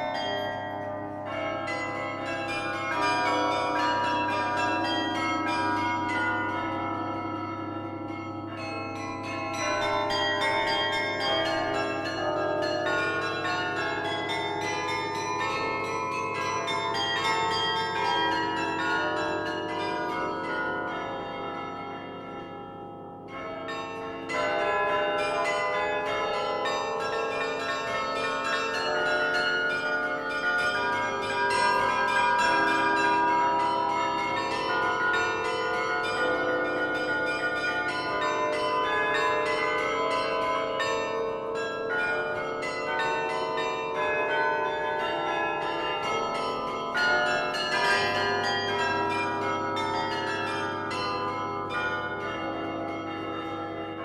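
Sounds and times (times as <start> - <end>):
carillon bells ringing: 0.0 - 54.0.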